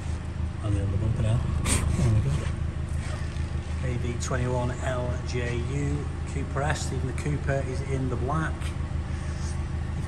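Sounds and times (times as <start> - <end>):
low steady rumble: 0.0 - 10.0
man murmuring: 1.6 - 2.6.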